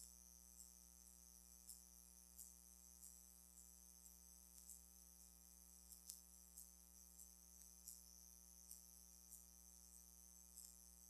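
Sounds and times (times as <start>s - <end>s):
faint electrical hum: 0.0s - 11.0s
faint ticks: 0.0s - 11.0s.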